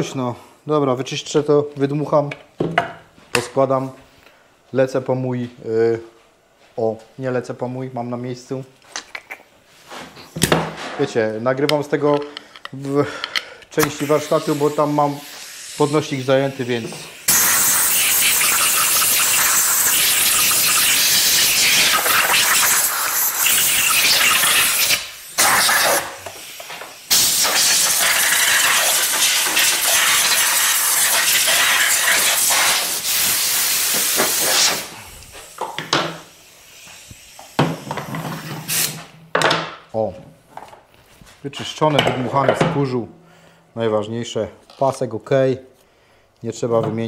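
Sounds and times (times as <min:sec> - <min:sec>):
compressed air blow gun hissing: 0:13.8 - 0:38.0.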